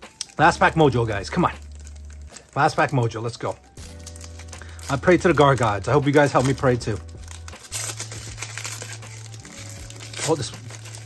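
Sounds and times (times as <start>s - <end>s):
foil wrapper crinkling: 0.1s - 11.0s.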